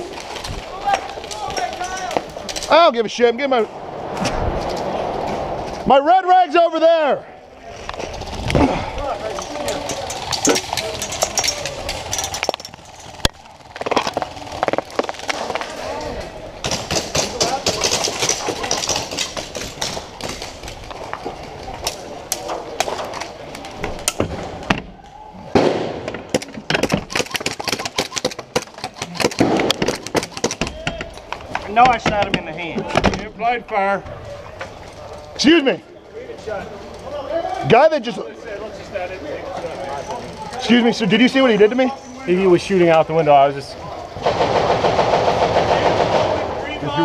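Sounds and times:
indistinct voices: 0:00.0 - 0:24.1
rapid clicks from airsoft guns: 0:26.7 - 0:31.6.

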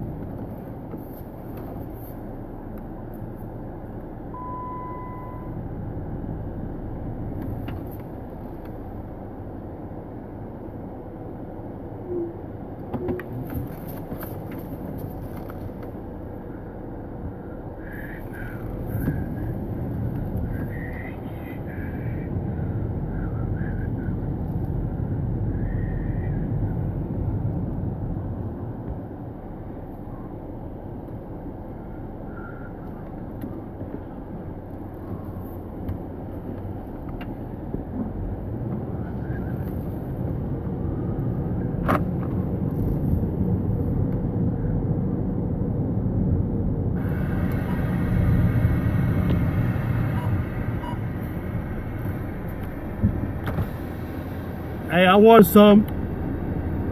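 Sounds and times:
car engine and road noise: 0:00.0 - 0:56.9.

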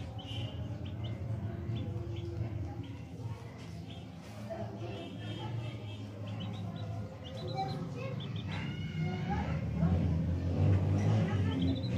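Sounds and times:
chick peeping: 0:00.0 - 0:09.5, 0:11.4 - 0:11.9.

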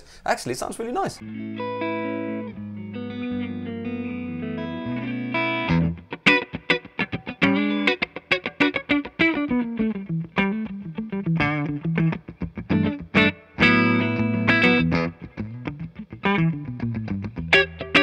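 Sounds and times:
clean electric guitar playing: 0:01.2 - 0:18.0.

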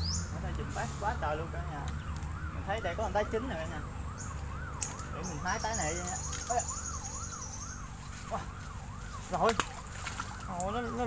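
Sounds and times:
siren-like warbling tone: 0:01.1 - 0:11.0.

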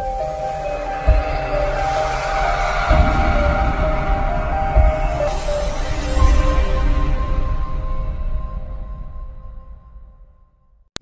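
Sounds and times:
whoosh: 0:00.0 - 0:08.4
sustained synthesizer notes: 0:00.0 - 0:10.4
low bass hit: 0:01.0 - 0:07.6.

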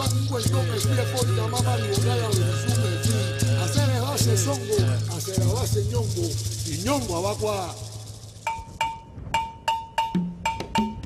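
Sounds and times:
metal bell ringing strokes: 0:00.0 - 0:10.2.

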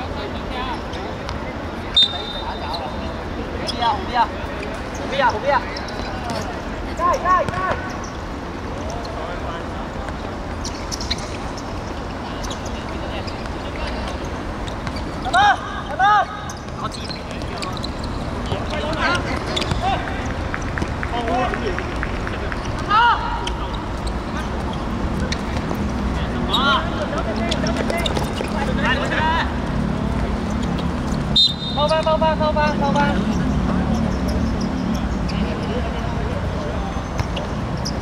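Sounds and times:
outdoor background noise: 0:00.0 - 0:38.0
footballers shouting: 0:15.0 - 0:25.3.

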